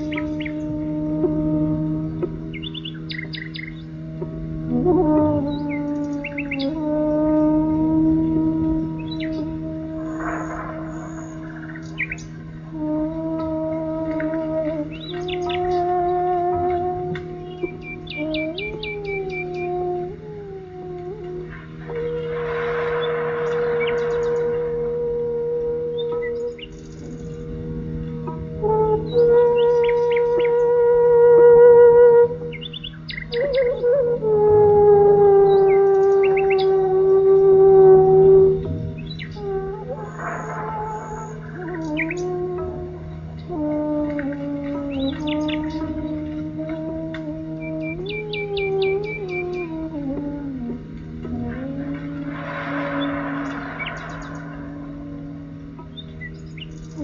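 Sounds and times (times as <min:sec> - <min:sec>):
birds chirping: 0:00.0 - 0:20.4, 0:21.1 - 0:25.2, 0:25.9 - 0:30.9, 0:32.2 - 0:34.4, 0:35.2 - 0:57.0
melodic instrument with drone: 0:00.0 - 0:57.0.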